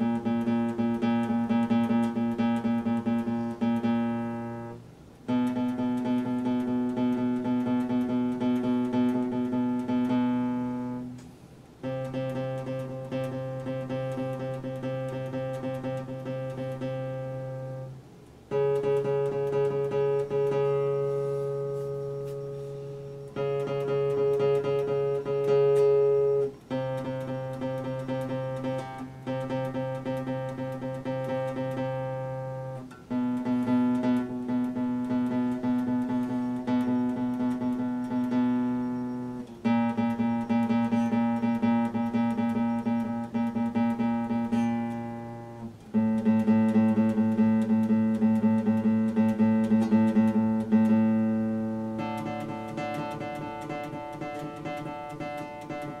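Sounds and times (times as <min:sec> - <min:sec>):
fingerstyle classical guitar: 0:00.0 - 0:56.0.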